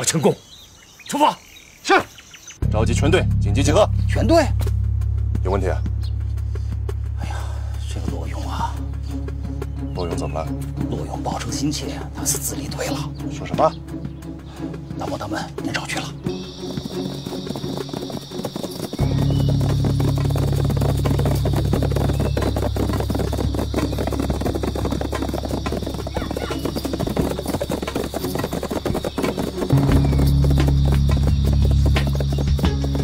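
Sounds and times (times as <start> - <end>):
dramatic background music: 2.6 - 33.0
horse hooves clip-clopping: 6.6 - 33.0.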